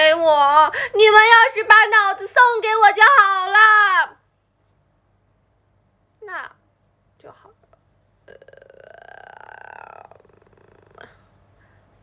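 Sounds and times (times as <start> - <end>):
woman murmuring: 7.3 - 11.3
woman's low rattly vocal sound: 8.3 - 11.2.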